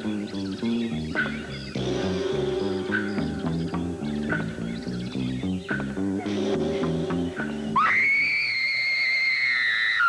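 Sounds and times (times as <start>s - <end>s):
dramatic music: 1.1s - 8.0s.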